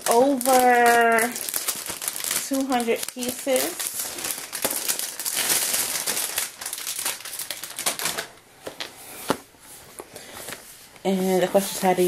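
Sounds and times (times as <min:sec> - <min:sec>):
packaging crinkling and rustling: 0:00.0 - 0:12.0.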